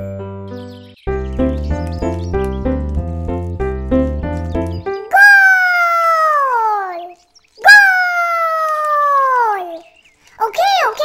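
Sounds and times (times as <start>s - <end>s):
background music: 0.0s - 5.1s
cartoon character calling out: 5.1s - 9.8s.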